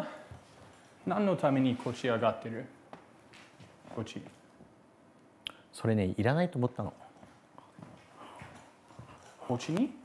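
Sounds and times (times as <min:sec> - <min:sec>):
light footsteps on wooden floor: 0:07.2 - 0:09.8.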